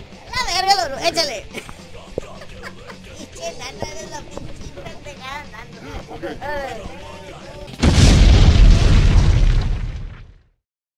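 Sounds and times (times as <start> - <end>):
explosion boom and rumble: 7.8 - 10.5.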